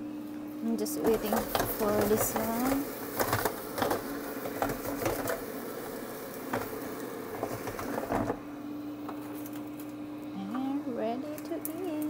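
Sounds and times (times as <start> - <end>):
air fryer basket clunk: 6.4 - 6.8.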